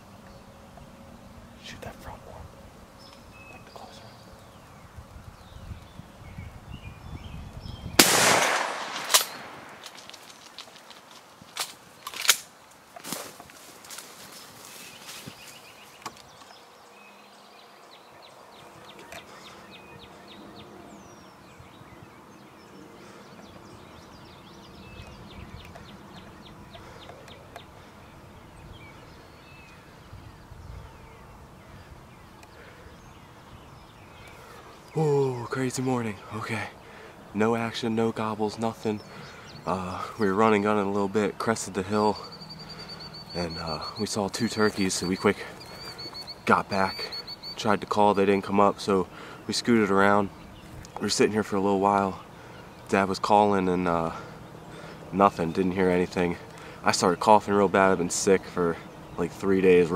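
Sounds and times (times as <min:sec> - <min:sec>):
outdoor background: 0:00.0 - 0:59.9
shotgun shot with echo: 0:08.0 - 0:09.8.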